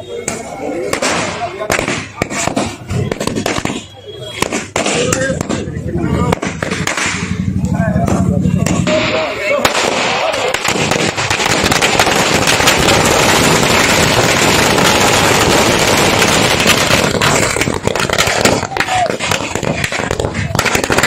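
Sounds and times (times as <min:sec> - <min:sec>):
firecrackers crackling: 0:00.0 - 0:21.0
voices calling out: 0:00.0 - 0:21.0.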